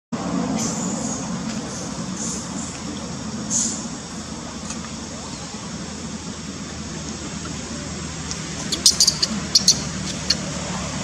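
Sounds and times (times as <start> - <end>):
high-pitched chirps: 8.7 - 10.4.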